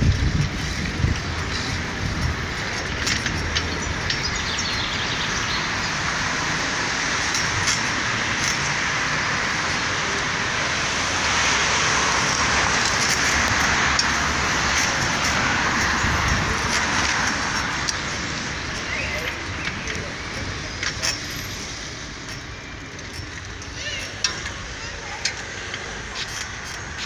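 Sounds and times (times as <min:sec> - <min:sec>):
wind rumble on microphone: 0:00.0 - 0:20.6
cars passing: 0:00.0 - 0:27.0.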